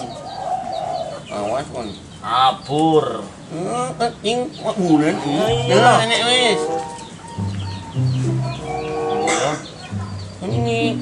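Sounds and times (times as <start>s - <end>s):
chickens clucking: 0.0s - 11.0s
music with held low notes: 5.3s - 11.0s.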